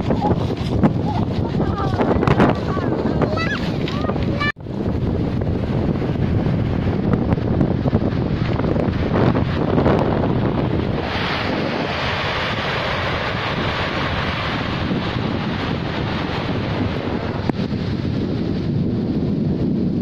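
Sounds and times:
surf on a pebble beach: 0:00.0 - 0:20.0
wind buffeting microphone: 0:00.0 - 0:20.0
hiss of waves washing up: 0:08.1 - 0:17.8.

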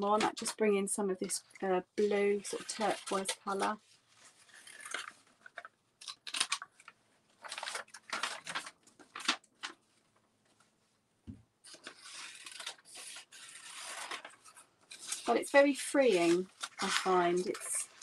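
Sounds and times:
paper rustling: 0:02.0 - 0:10.8, 0:11.6 - 0:18.0.

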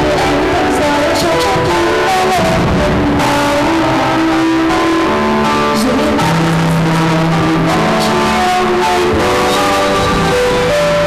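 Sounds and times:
backing music over pa: 0:00.0 - 0:11.0
woman singing into microphone: 0:00.0 - 0:11.0.

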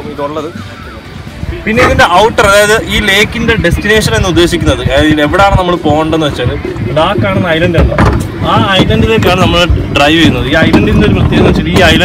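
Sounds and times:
motorboat engine humming: 0:00.0 - 0:12.0
man talking: 0:01.6 - 0:12.0.

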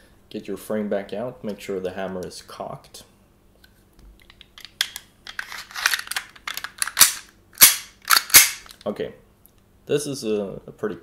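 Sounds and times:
sharp plastic clacks: 0:04.0 - 0:08.9
pistol slide scraping on rails: 0:05.3 - 0:07.2.

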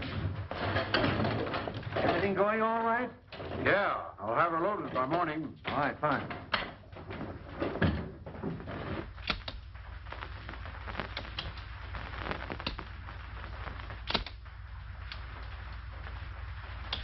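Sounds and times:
film soundtrack hiss and hum: 0:00.0 - 0:17.0
sharp clicks: 0:09.2 - 0:09.7, 0:14.0 - 0:14.4.

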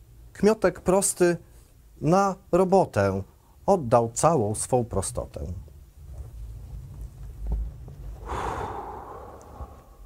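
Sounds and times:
man sighing: 0:08.2 - 0:10.0.

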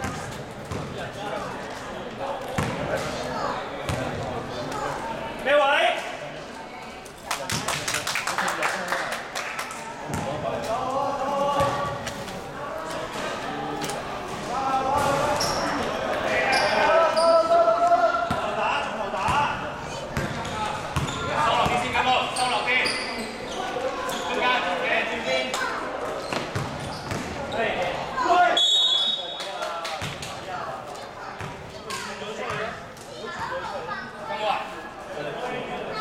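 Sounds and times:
sneakers squeaking: 0:00.0 - 0:01.1, 0:02.5 - 0:04.6, 0:14.3 - 0:17.6, 0:20.1 - 0:24.6, 0:26.0 - 0:29.4
players talking and calling out: 0:00.0 - 0:36.0.

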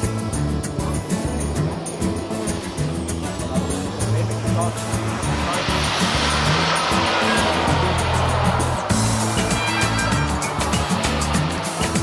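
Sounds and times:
background music with bass line: 0:00.0 - 0:12.0
model jet turbine rushing past: 0:00.1 - 0:12.0.

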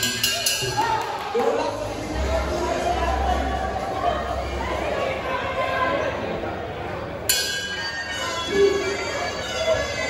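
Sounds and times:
boxing ring bell ringing: 0:00.0 - 0:00.8, 0:07.3 - 0:10.0.

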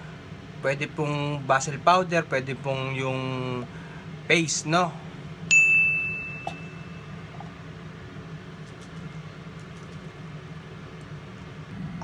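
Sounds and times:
steady low hum: 0:00.0 - 0:12.0
high bell-like ding: 0:05.5 - 0:07.2.

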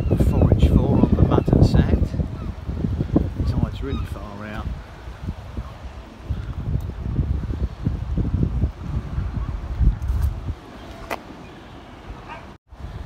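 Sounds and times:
wind buffeting microphone: 0:00.0 - 0:11.4, 0:12.0 - 0:13.0.

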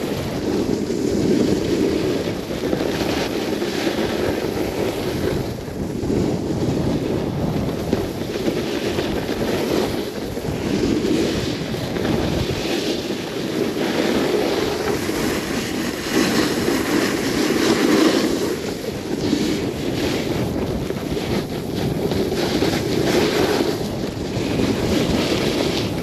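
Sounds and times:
skis hissing on snow: 0:00.0 - 0:26.0
wind buffeting microphone: 0:00.0 - 0:26.0.

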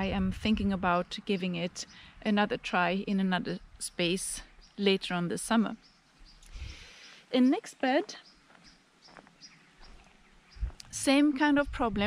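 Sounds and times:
low rumble: 0:00.0 - 0:01.0.

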